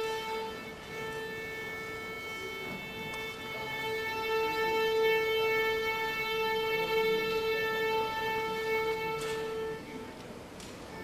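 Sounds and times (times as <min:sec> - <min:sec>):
string orchestra sustained note: 0:00.0 - 0:11.0.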